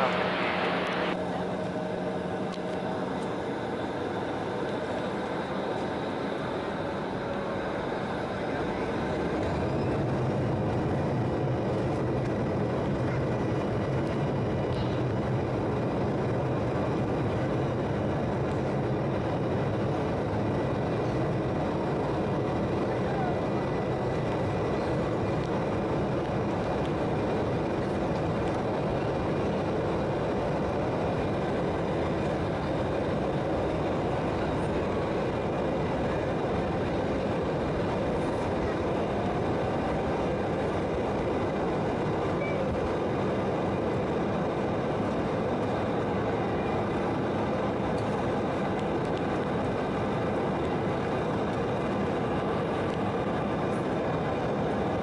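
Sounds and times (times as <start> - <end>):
jet engines rumbling: 0.0 - 55.0.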